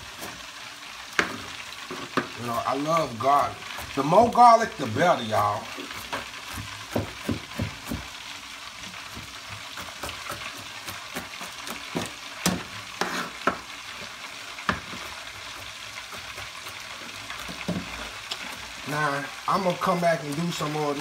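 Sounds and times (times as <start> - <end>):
wings frying in hot oil: 0.0 - 21.0
knife chopping on cutting board: 5.9 - 8.1.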